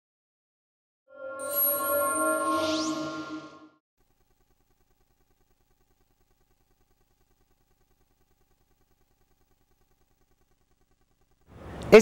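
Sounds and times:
rising whistle-like sweep: 1.1s - 3.8s
synthesized chord tones: 1.1s - 3.8s.

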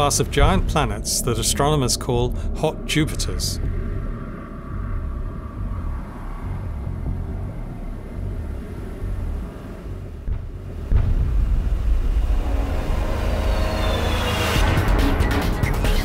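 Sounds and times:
cinematic low drone music: 0.0s - 16.0s.

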